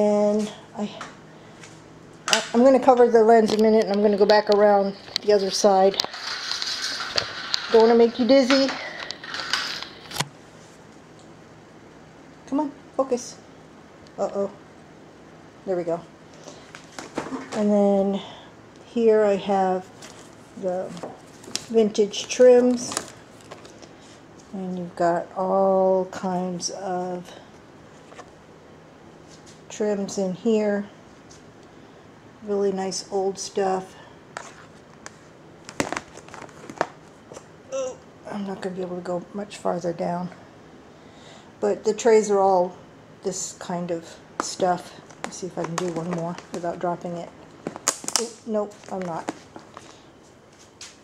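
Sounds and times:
faint steady hum: 0:00.0 - 0:51.0
rustles: 0:05.0 - 0:11.0
clicks on plastic bins: 0:44.4 - 0:46.7.

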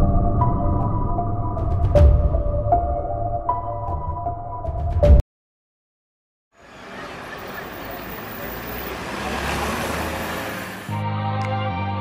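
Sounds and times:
low rumble: 0:00.0 - 0:03.4
distant city traffic hum: 0:06.6 - 0:11.0.

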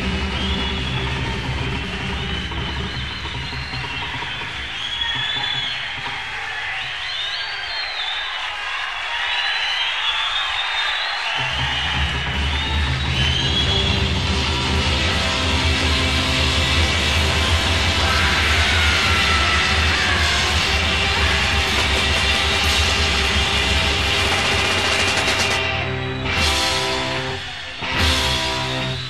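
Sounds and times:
hard rock band playing: 0:11.4 - 0:29.0.

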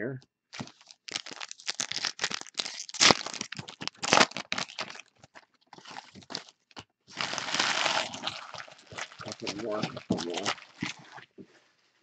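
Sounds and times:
foil wrappers crinkling and tearing: 0:00.5 - 0:11.2
person speaking: 0:09.2 - 0:10.6.

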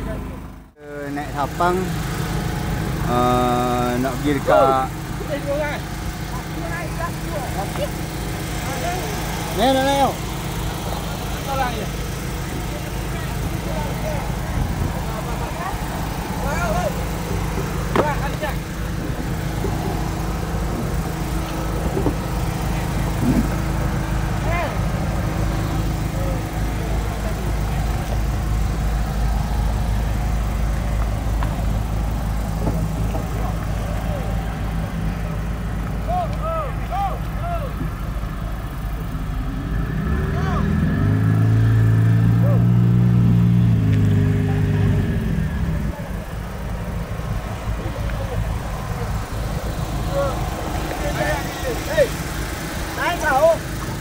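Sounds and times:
boat engine idling and revving: 0:00.0 - 0:54.0.

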